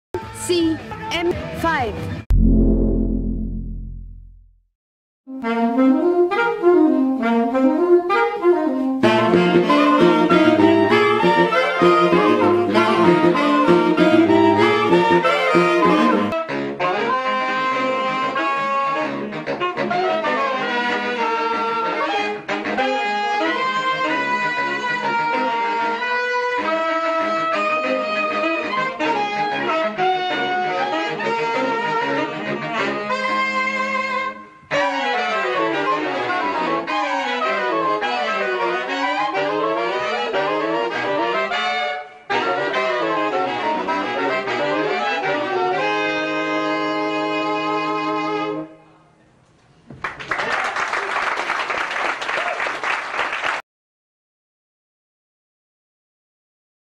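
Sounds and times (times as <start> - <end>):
saxophone quartet playing jazz: 5.3 - 48.8.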